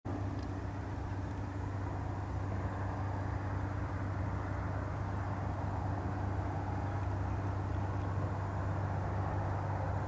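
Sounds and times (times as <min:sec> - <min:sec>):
low engine hum: 0:00.1 - 0:10.0.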